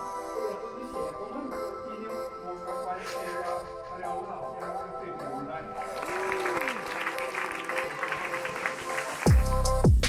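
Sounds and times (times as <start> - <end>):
background music: 0.0 - 10.0
people clapping: 5.8 - 9.7.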